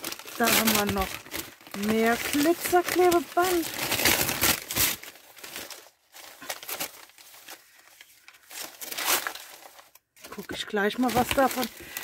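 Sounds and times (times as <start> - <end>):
wrapping paper rustling and crinkling: 0.0 - 12.0.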